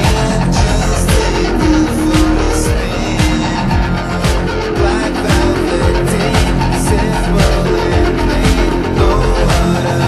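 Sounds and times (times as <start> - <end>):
backing track: 0.0 - 10.0
distorted electric guitar: 0.0 - 10.0.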